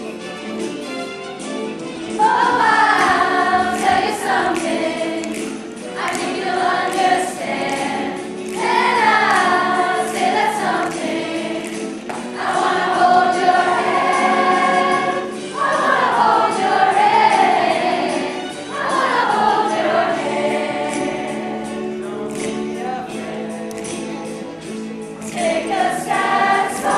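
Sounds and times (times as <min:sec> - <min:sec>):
choir singing a pop song: 0:02.0 - 0:24.4, 0:25.2 - 0:26.9.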